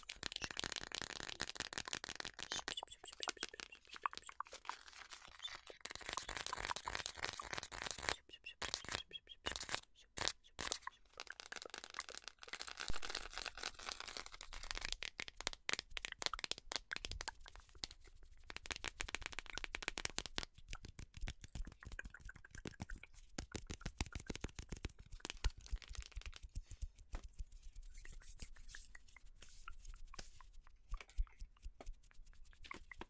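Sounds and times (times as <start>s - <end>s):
plastic container crackling: 0.0s - 17.4s, 21.1s - 26.5s.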